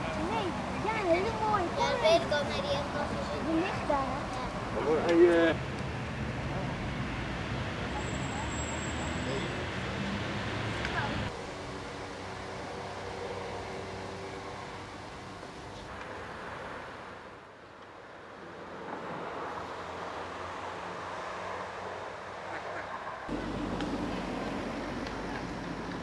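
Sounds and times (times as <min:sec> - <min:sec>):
distant traffic: 0:00.0 - 0:26.0.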